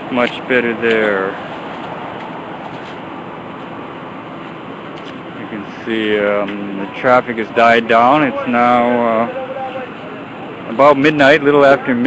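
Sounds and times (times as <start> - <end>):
light road traffic: 0.0 - 12.0.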